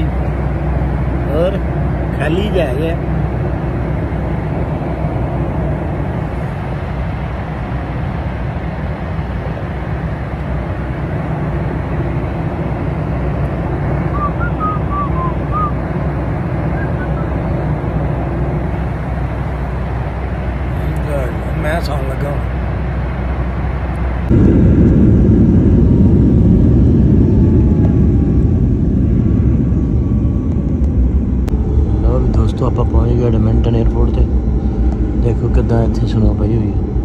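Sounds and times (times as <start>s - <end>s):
airliner cabin engine rumble: 0.0s - 37.0s.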